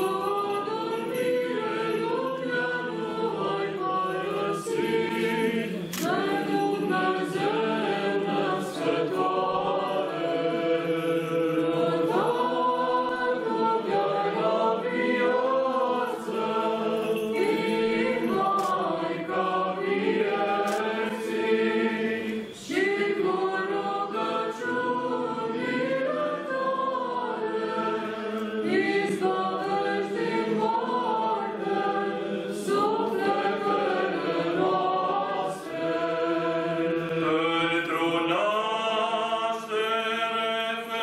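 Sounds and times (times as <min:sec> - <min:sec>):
choir singing a cappella chant: 0:00.0 - 0:41.0.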